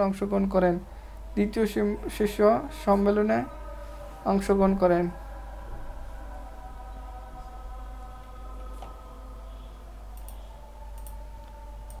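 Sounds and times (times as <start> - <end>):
steady low hum: 0.0 - 12.0
computer mouse clicking: 10.1 - 12.0.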